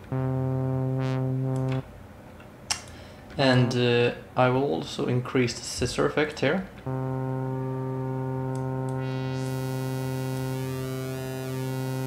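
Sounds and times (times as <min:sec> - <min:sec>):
synthesizer sawtooth bass note: 0:00.0 - 0:01.9, 0:06.9 - 0:12.0.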